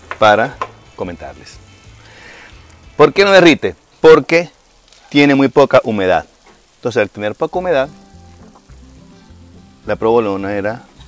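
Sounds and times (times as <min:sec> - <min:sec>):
quiet background music: 0:00.0 - 0:04.6, 0:05.2 - 0:11.0
cheese sizzling faintly: 0:00.0 - 0:11.0.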